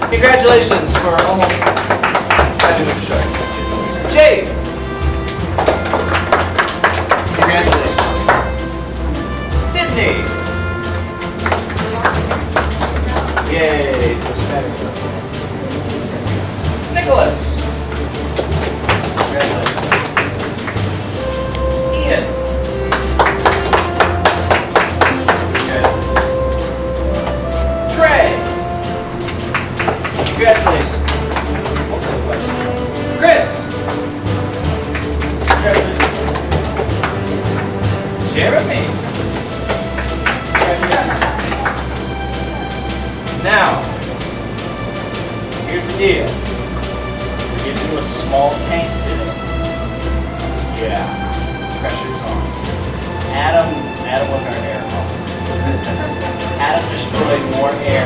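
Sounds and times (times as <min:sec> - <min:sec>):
music with low bass line: 0:00.0 - 0:58.0
sharp percussive hits: 0:00.0 - 0:58.0.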